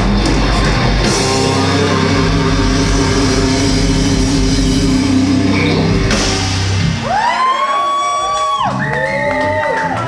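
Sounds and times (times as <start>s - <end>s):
live metal band: 0.0s - 10.0s.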